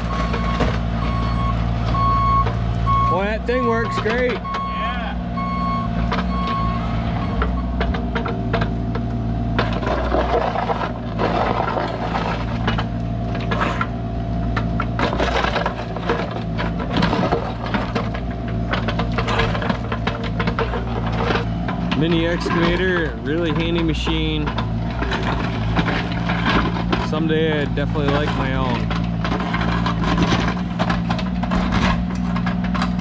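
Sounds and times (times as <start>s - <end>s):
excavator diesel engine running: 0.0s - 33.0s
travel alarm beep: 0.4s - 3.2s, 5.4s - 7.4s
bucket scraping gravel: 9.6s - 12.8s, 13.4s - 14.0s, 15.0s - 33.0s.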